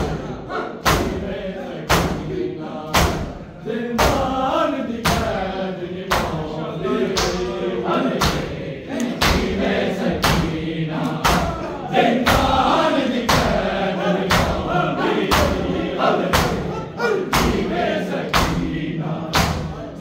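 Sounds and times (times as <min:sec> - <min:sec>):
men chanting: 0:00.0 - 0:20.0
palms slapping bare chests: 0:00.8 - 0:01.3, 0:01.9 - 0:02.3, 0:02.9 - 0:03.4, 0:08.2 - 0:13.6, 0:17.3 - 0:19.7.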